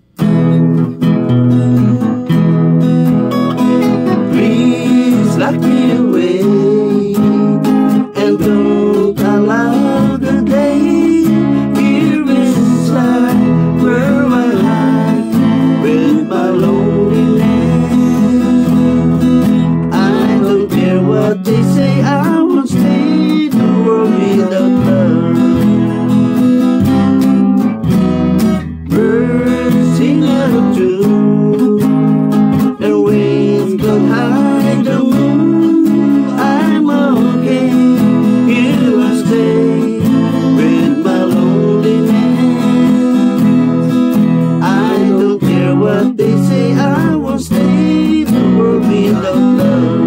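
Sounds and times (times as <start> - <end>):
acoustic guitar strumming: 0.0 - 50.0
electric guitar melody: 0.0 - 50.0.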